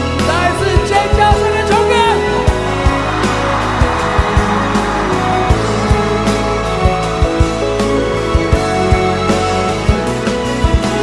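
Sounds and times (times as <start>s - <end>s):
keyboard or string chords: 2.1s - 11.0s
hissing swell: 2.6s - 8.3s
drum beat: 2.6s - 8.7s.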